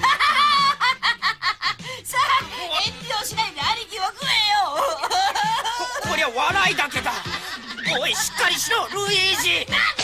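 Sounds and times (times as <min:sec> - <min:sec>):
background music: 0:00.0 - 0:10.0
cartoon voice speaking excitedly: 0:07.9 - 0:10.0.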